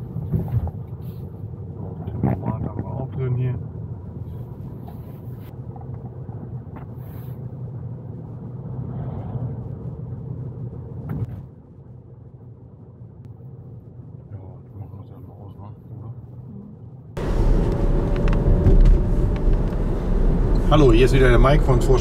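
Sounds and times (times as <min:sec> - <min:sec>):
road and tyre rumble in car: 0:00.0 - 0:22.0.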